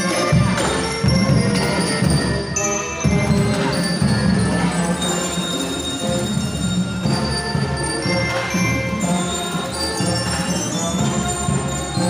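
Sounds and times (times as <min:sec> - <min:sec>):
brass marching band playing: 0:00.0 - 0:12.0.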